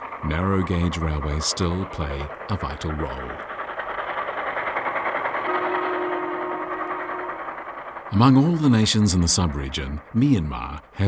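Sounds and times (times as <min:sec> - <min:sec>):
train clattering on track: 0:00.0 - 0:11.0.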